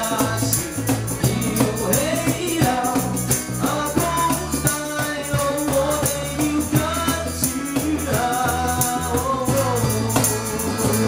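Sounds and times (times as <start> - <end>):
bass: 0.0 - 11.0
cajon: 0.0 - 11.0
man singing: 0.0 - 11.0
strummed acoustic guitars: 0.0 - 11.0
tambourine shaken: 0.0 - 11.0.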